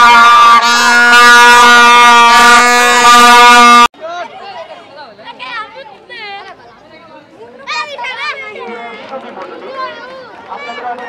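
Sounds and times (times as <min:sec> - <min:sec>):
plastic toy trumpets blaring: 0:00.0 - 0:03.9.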